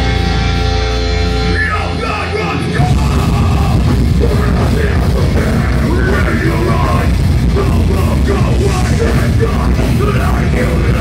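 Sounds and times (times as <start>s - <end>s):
live heavy metal band: 0.0s - 11.0s
vocalist singing: 1.5s - 11.0s.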